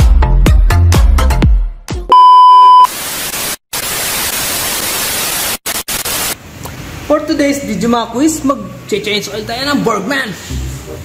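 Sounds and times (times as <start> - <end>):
television static hiss: 2.9 - 6.4.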